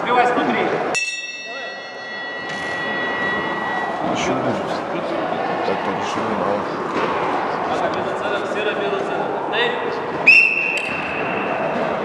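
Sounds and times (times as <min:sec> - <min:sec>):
hall noise: 0:00.0 - 0:12.0
bell ringing: 0:00.9 - 0:04.6.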